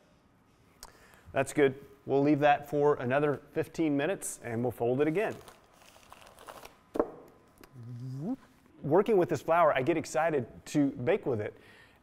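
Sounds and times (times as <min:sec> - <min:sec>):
plastic cover rustling: 0:05.1 - 0:06.8.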